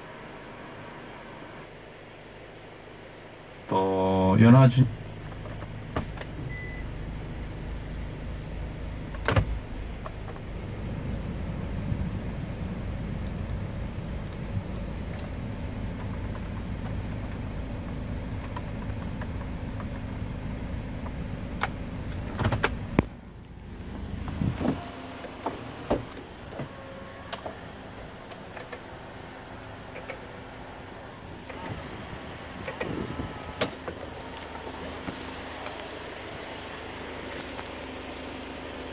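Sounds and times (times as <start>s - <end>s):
blower fan humming: 0.0s - 38.9s.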